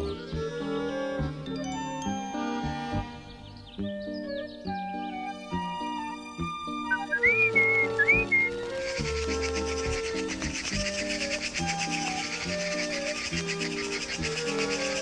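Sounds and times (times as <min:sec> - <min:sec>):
cartoon background music: 0:00.0 - 0:15.0
whistle-like glides: 0:06.8 - 0:15.0
fast fluttering high-pitched rustle: 0:08.4 - 0:15.0.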